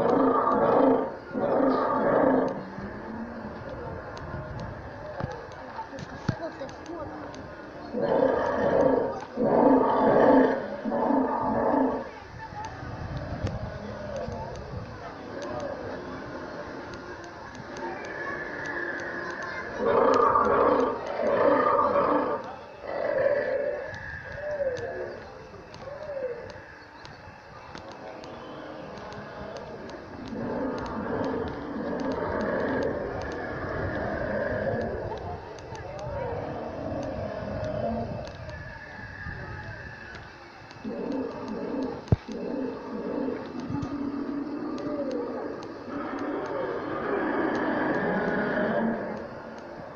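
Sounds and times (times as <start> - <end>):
recorded dinosaur roars: 0.0 - 4.2, 7.9 - 12.1, 17.6 - 26.8, 28.6 - 49.9
low cooing calls: 0.0 - 5.7, 13.3 - 49.9.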